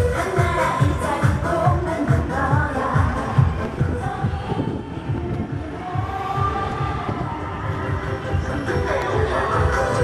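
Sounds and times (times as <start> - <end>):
campaign song over loudspeakers: 0.0 - 10.0.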